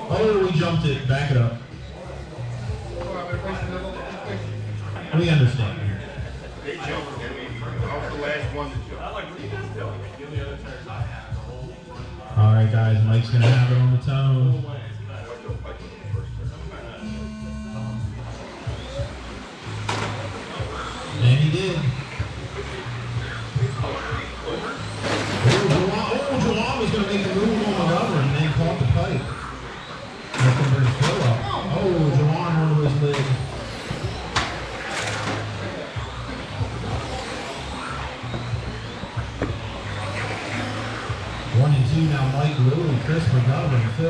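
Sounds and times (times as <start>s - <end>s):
voices in a hall: 0.0s - 44.0s
electric motors whining: 15.8s - 44.0s.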